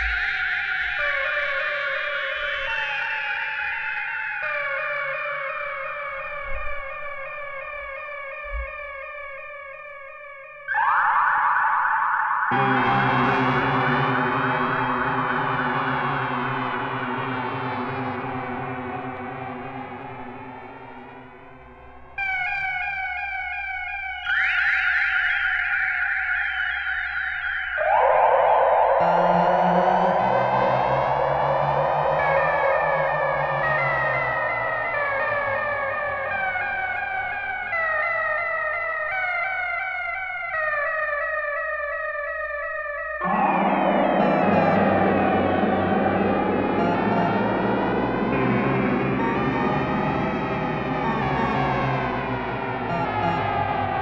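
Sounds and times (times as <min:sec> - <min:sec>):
modular synthesizer chords: 0:10.7 - 0:22.4, 0:27.7 - 0:38.5, 0:43.2 - 0:54.0.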